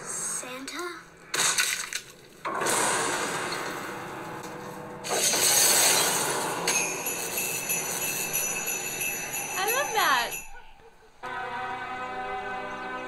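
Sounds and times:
steady high ringing tones: 0:06.7 - 0:12.0.

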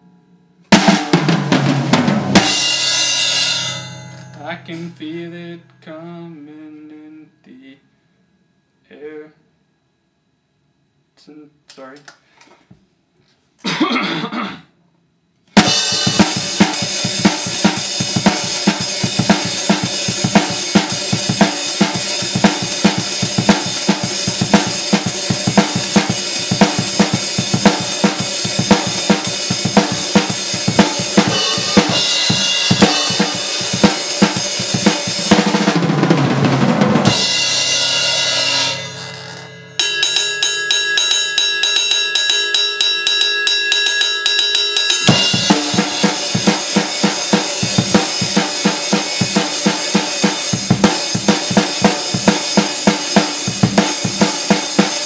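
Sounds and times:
cymbal ringing: 0:00.0 - 0:07.3, 0:15.6 - 0:35.8, 0:37.0 - 0:55.0
drum kit beat: 0:00.7 - 0:05.3, 0:15.6 - 0:55.0.

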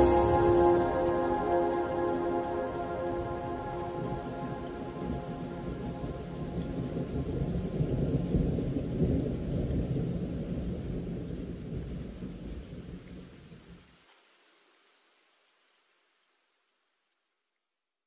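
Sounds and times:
soft music notes: 0:00.0 - 0:07.9
steady rain: 0:00.0 - 0:17.3.

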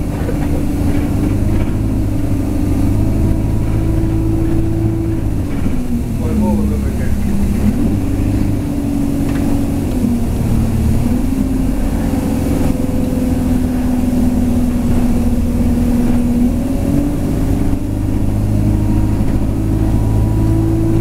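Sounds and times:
bus engine droning: 0:00.0 - 0:21.0
road rumble: 0:00.0 - 0:21.0.

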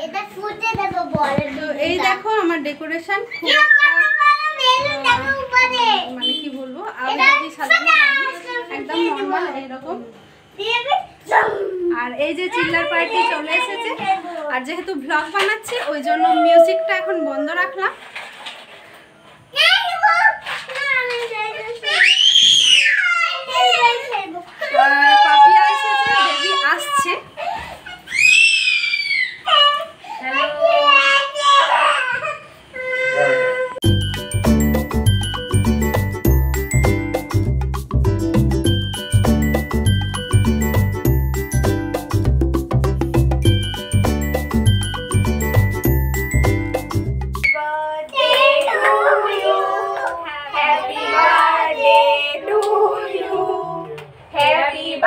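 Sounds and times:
child screaming: 0:03.3 - 0:05.0, 0:21.8 - 0:23.9, 0:24.6 - 0:27.1, 0:27.9 - 0:33.8
chiming background music: 0:33.9 - 0:37.8, 0:38.7 - 0:41.9, 0:43.4 - 0:47.4
children and women singing: 0:47.6 - 0:55.0.

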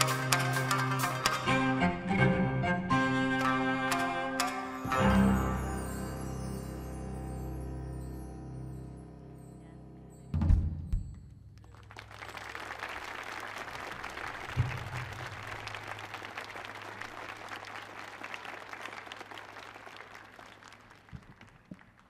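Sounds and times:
audience applauding: 0:11.6 - 0:22.0.

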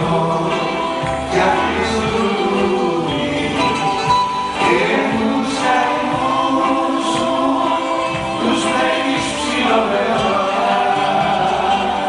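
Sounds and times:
group of singers singing: 0:00.0 - 0:12.0
live band playing: 0:00.0 - 0:12.0.

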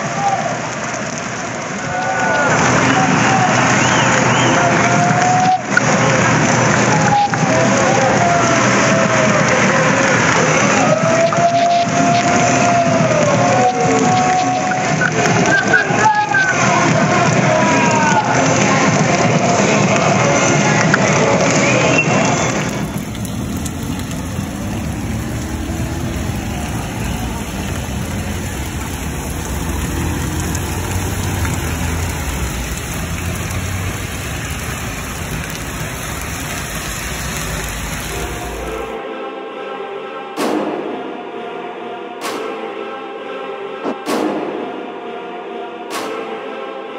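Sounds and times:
rain on a wet street: 0:00.0 - 0:39.0
traffic going by: 0:00.6 - 0:07.6, 0:18.9 - 0:39.0
raised voices: 0:01.8 - 0:39.2.

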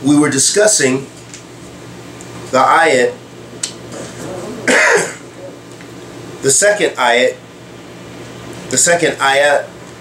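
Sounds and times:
man coughing: 0:04.6 - 0:05.4.

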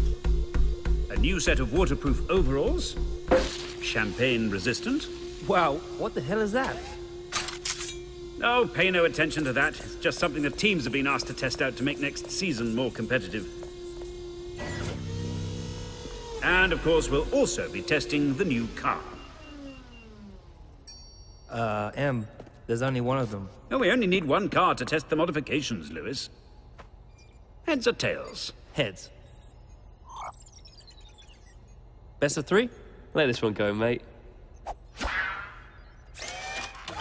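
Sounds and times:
electric motor hum: 0:00.1 - 0:20.9
falling electronic blip: 0:29.2 - 0:31.8.

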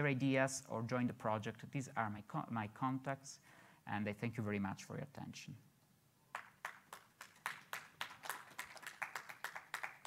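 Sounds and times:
faint audience clapping: 0:06.3 - 0:10.0.

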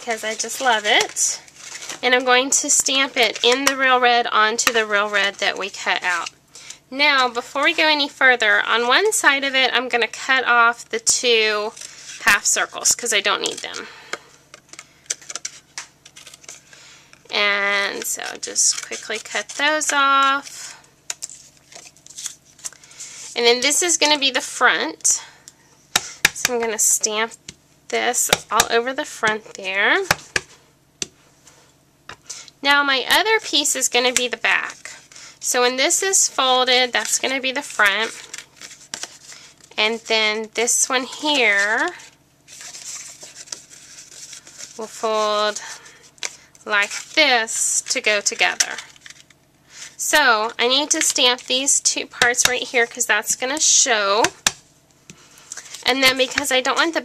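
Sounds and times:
cardstock rustling and sliding: 0:00.1 - 0:03.6.

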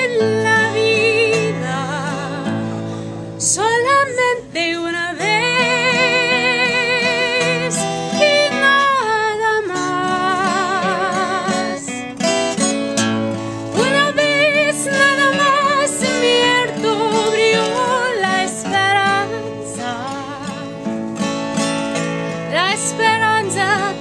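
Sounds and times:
woman singing with vibrato: 0:00.0 - 0:12.2, 0:13.6 - 0:20.9, 0:22.4 - 0:24.0
strummed acoustic guitar: 0:00.0 - 0:24.0.

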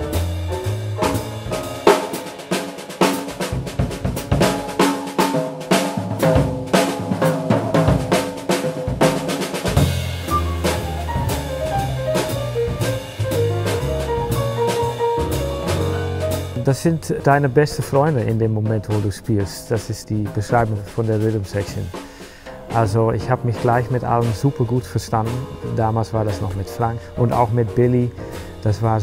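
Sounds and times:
double bass line: 0:00.0 - 0:02.2, 0:09.7 - 0:22.0, 0:22.6 - 0:29.0
piano notes: 0:00.0 - 0:04.9, 0:07.9 - 0:21.9, 0:22.5 - 0:29.0
drum kit strokes: 0:00.0 - 0:29.0.

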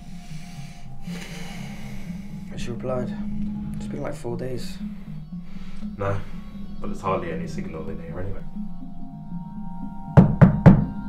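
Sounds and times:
low music drone: 0:00.0 - 0:11.0
knocks on a door: 0:10.2 - 0:10.9.

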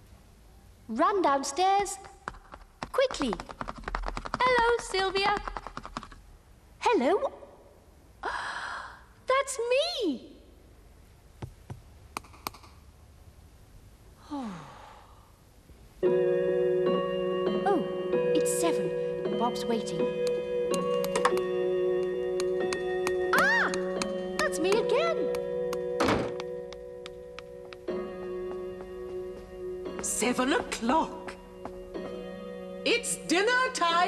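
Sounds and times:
background music held notes: 0:16.0 - 0:34.0
cartoon door shutting thunk: 0:26.0 - 0:26.4.

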